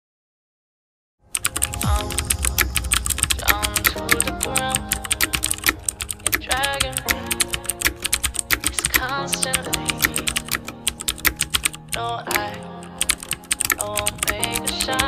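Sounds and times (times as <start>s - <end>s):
background music: 1.2s - 15.0s
keyboard typing clicks: 1.3s - 15.0s.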